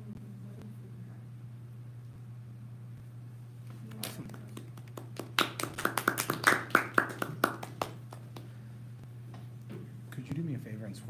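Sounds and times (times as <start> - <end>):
low electrical hum: 0.0 - 11.0
small group clapping: 3.8 - 8.6.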